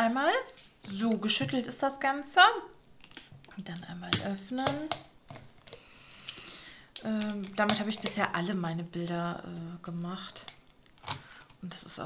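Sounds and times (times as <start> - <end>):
plastic scraping: 7.0 - 8.4.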